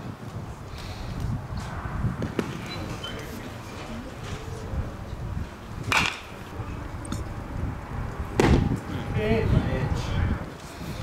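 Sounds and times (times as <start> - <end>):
bat cracking ball: 2.2 - 2.7, 5.8 - 6.4, 8.3 - 8.8
loud thud: 8.3 - 8.8.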